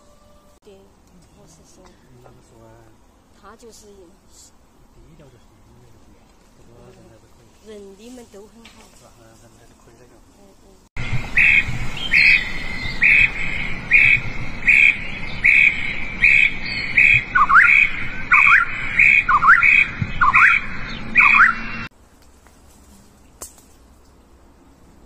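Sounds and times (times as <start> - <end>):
loud squawking calls: 11.4 - 21.9.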